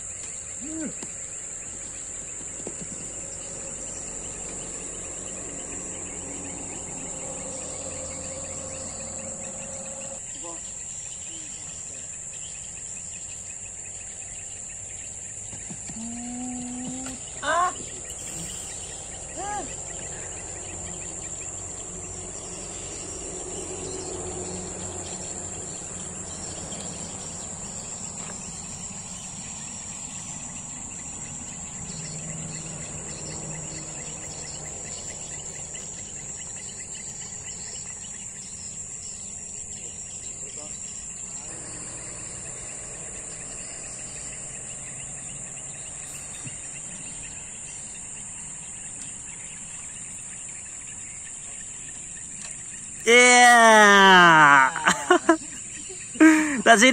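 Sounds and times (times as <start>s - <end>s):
insects chirring: 0.0s - 56.9s.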